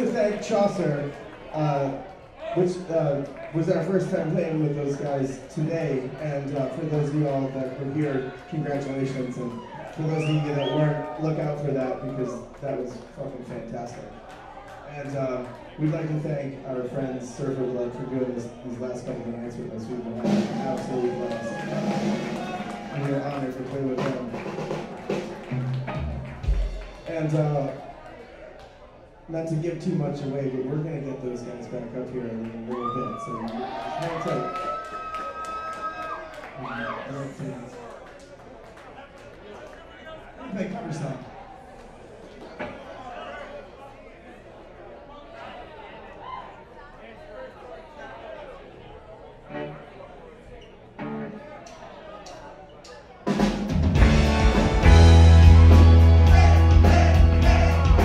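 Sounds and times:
voices: 0:00.0 - 0:25.6
crowd chatter: 0:00.0 - 0:58.0
guitar phrases: 0:49.5 - 0:50.0, 0:51.0 - 0:51.6, 0:53.9 - 0:58.0
bass guitar notes: 0:53.7 - 0:58.0
keyboard phrases: 0:53.9 - 0:58.0.

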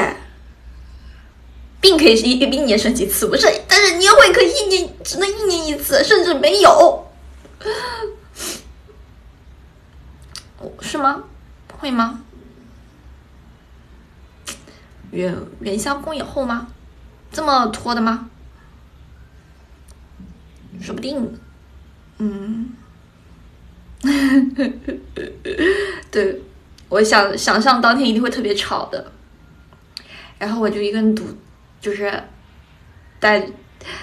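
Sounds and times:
faint low hum: 0:00.0 - 0:34.0.

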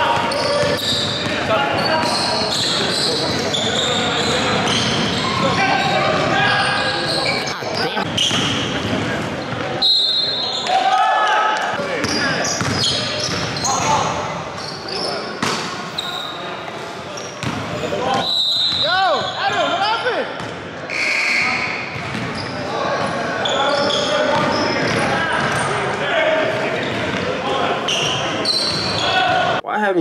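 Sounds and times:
basketball bouncing on hardwood floor: 0:22.0 - 0:22.3.

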